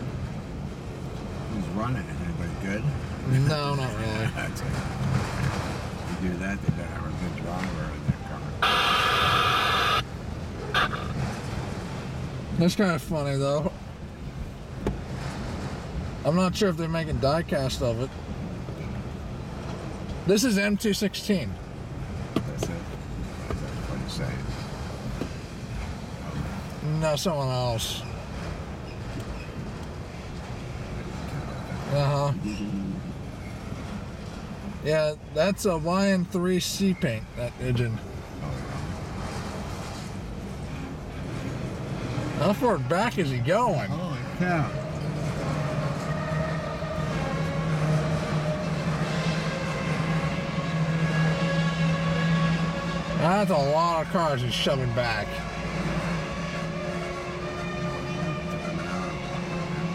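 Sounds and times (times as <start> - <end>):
train rolling rumble and hiss: 0.0 - 9.0, 9.8 - 59.9.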